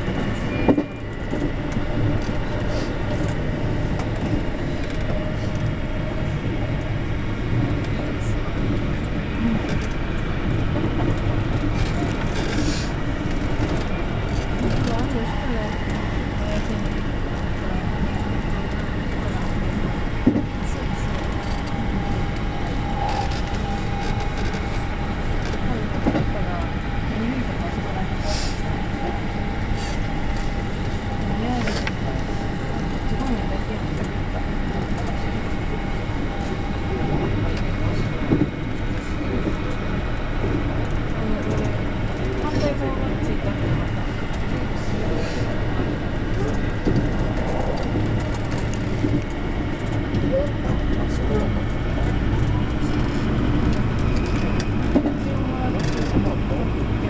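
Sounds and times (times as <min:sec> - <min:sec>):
train wheels rolling on rail: 0:00.0 - 0:57.0.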